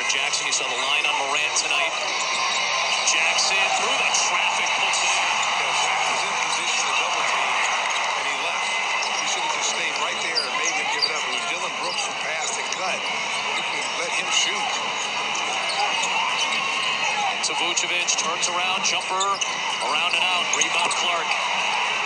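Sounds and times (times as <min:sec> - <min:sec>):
crowd murmur: 0:00.0 - 0:22.0.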